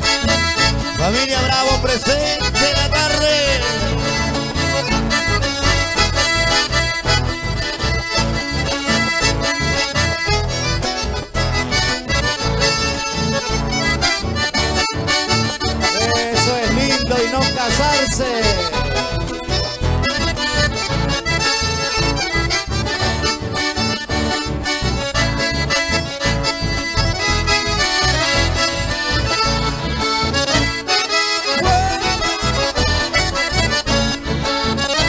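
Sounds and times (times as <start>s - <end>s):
accordion folk band playing: 0.0s - 35.0s
steady pulsing bass beat: 0.1s - 10.8s.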